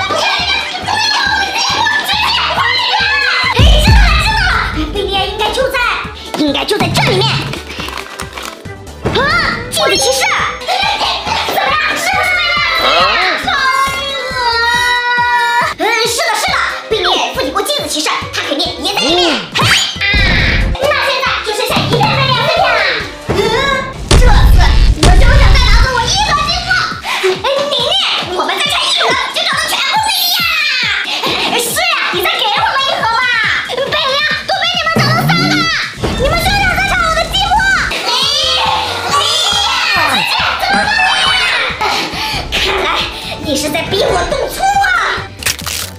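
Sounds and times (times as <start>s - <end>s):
background music with steady beat: 0.0s - 20.2s
excited talking: 31.8s - 35.8s, 39.2s - 42.0s.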